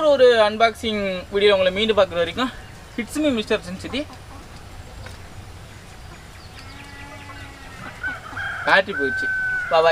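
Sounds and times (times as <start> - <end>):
man speaking: 0.0 - 4.2
chicken calling: 1.2 - 9.9.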